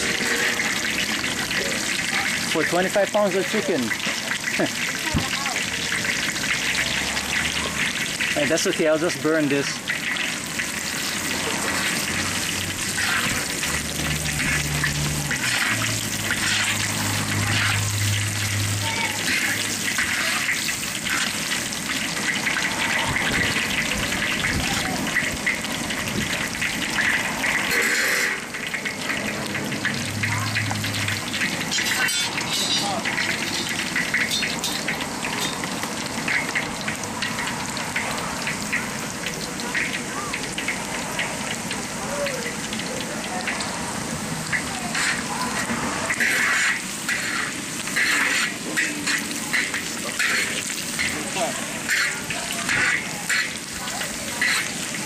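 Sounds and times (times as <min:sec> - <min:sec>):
ginger sizzling in hot oil: 0:00.0 - 0:55.0.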